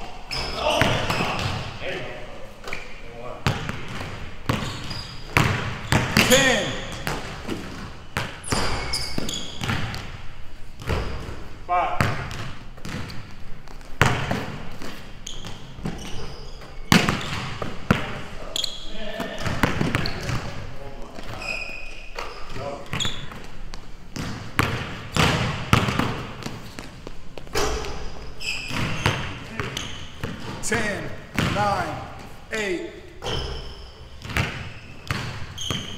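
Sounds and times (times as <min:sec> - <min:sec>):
sneaker squeaks: 0:00.0 - 0:01.8, 0:02.6 - 0:10.2, 0:10.8 - 0:32.4, 0:33.0 - 0:35.9
basketball dribbling: 0:03.4 - 0:10.2, 0:12.0 - 0:18.2, 0:22.8 - 0:30.7, 0:31.3 - 0:32.0, 0:33.2 - 0:35.9.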